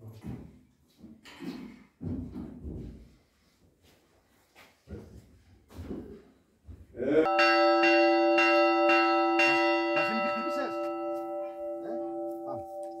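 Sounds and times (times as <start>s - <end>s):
bell struck and ringing: 7.3s - 13.0s.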